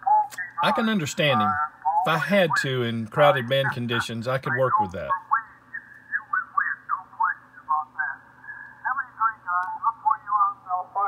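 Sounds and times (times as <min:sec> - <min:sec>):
steady low hum: 0:00.0 - 0:11.0
man talking over radio: 0:00.1 - 0:08.2.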